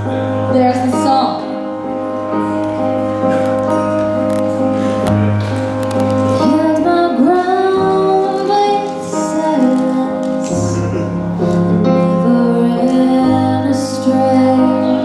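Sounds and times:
woman singing into a microphone: 6.4 - 11.2, 11.8 - 15.0.

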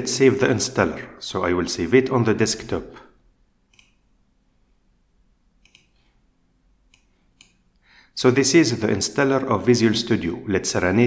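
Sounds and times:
computer mouse button clicking: 3.7 - 4.0, 5.6 - 6.0, 6.9 - 7.6.

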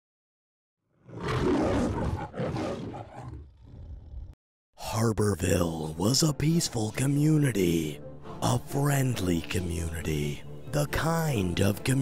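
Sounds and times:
lion roaring: 1.0 - 4.4.

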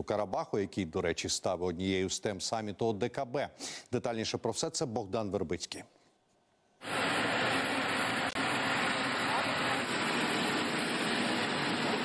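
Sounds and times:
jet engine rushing: 6.8 - 12.0.

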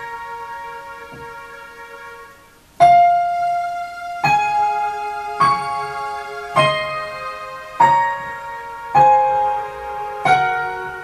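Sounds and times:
piano notes on keyboard: 0.0 - 11.0.

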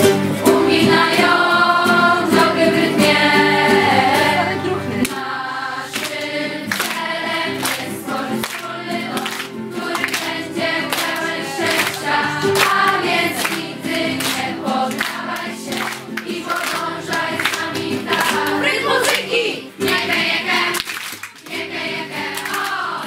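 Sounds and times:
strummed acoustic guitars: 0.0 - 23.0
young voices singing in unison: 0.4 - 20.8, 21.5 - 23.0.

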